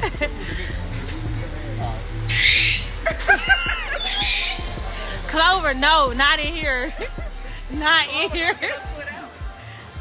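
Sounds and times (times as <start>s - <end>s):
monkey screeching: 2.2s - 4.8s.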